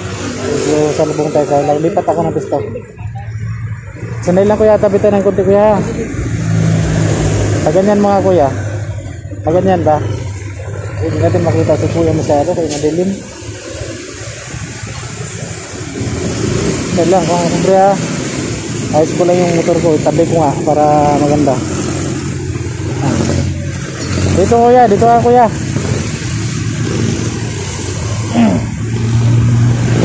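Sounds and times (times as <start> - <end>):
motorcycle running at low speed: 0.0 - 30.0
steady rushing noise: 0.0 - 30.0
vehicle engine humming: 0.0 - 30.0.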